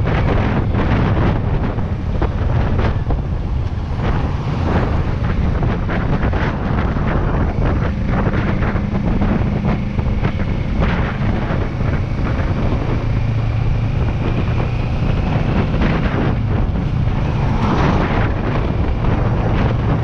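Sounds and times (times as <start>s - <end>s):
motorcycle engine accelerating: 0.0s - 20.0s
wind buffeting microphone: 0.0s - 20.0s.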